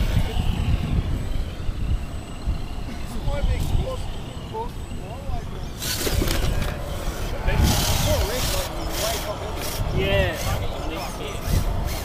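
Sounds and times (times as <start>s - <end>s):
faint voices: 0.0s - 12.0s
wind buffeting microphone: 0.0s - 12.0s.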